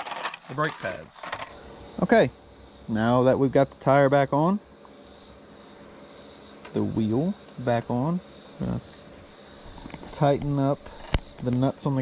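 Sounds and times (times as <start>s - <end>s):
high-pitched insect chorus: 0.0s - 12.0s
man speaking: 6.8s - 8.9s, 11.4s - 12.0s.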